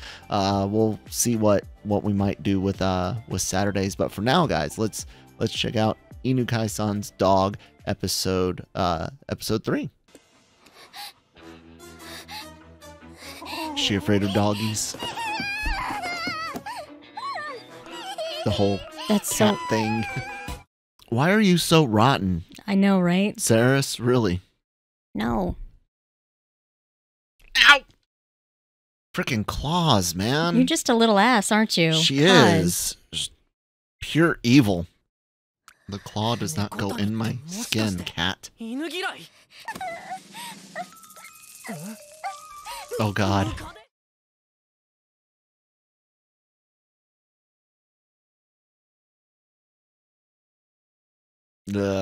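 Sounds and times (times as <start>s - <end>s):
background music: 0.0s - 22.2s, 29.8s - 33.2s, 35.9s - 43.8s
puppy whining: 13.2s - 20.6s, 39.6s - 43.8s
puppy whimpers: 39.6s - 40.2s, 40.8s - 43.7s.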